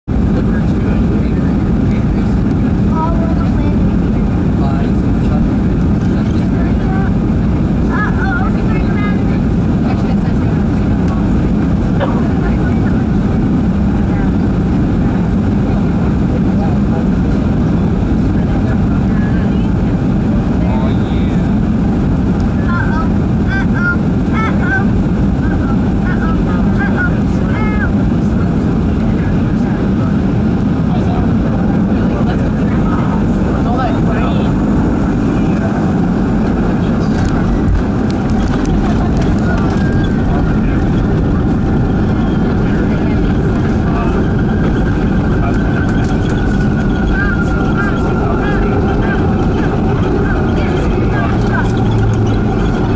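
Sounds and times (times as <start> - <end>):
jet engines rumbling in cabin: 0.0 - 52.9
rushing airflow: 0.0 - 52.9.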